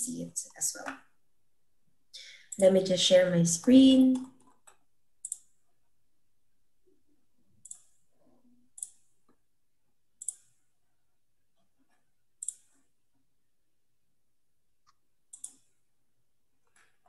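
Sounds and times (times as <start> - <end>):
computer mouse clicking: 4.1 - 5.6, 7.5 - 8.0, 8.7 - 9.4, 10.2 - 10.6, 11.7 - 12.9, 14.8 - 15.8.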